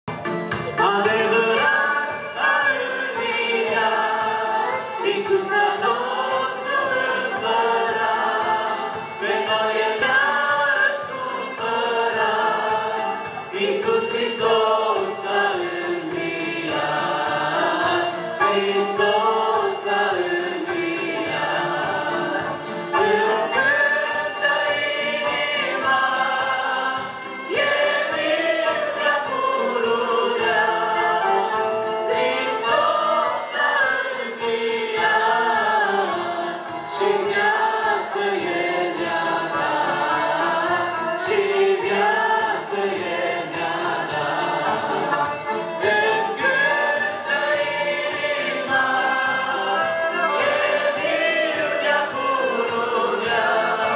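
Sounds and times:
group singing a hymn over loudspeakers: 0.6 - 53.9.

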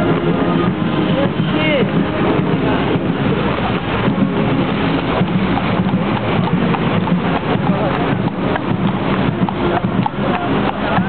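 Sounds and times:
marching boots on paved road: 0.0 - 11.0
street noise: 0.0 - 11.0.

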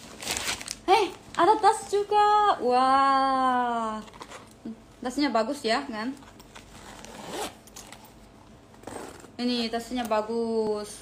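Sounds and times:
zipper pulled open: 6.2 - 8.1, 8.7 - 9.6.

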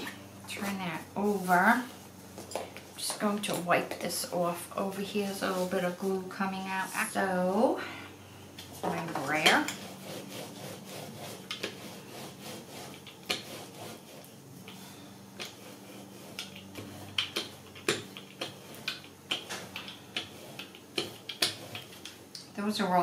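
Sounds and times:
rubber roller rolling over paper: 0.0 - 7.7, 8.6 - 23.0.

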